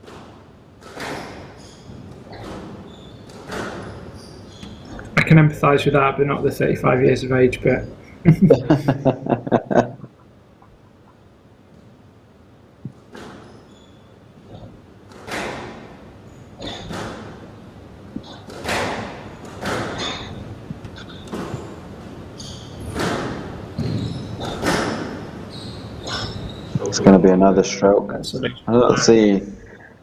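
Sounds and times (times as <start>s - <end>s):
squash ball hitting rackets and walls: 0.0s - 5.0s, 12.8s - 13.7s, 15.0s - 17.6s, 18.2s - 26.6s
shoes squeaking on court: 0.8s - 5.2s, 12.9s - 17.5s, 18.1s - 27.1s.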